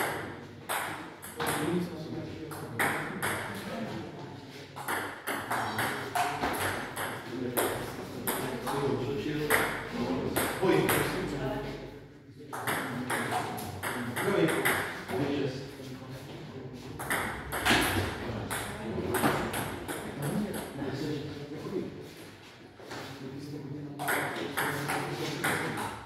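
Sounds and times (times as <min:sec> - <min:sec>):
table tennis ball hits: 0:00.0 - 0:01.8, 0:02.8 - 0:03.6, 0:04.8 - 0:08.8, 0:12.6 - 0:15.2, 0:17.0 - 0:20.7, 0:24.0 - 0:26.0.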